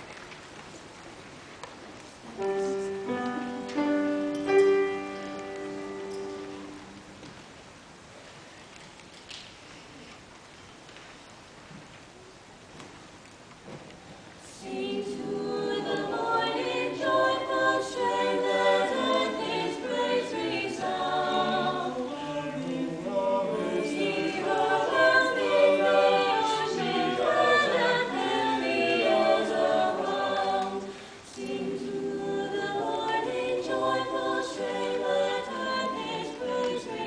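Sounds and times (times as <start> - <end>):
choir singing a cappella: 14.4 - 37.0.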